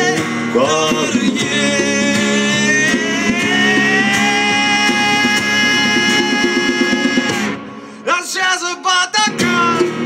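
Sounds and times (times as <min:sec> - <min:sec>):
strummed acoustic guitar: 0:00.0 - 0:08.1, 0:09.1 - 0:10.0.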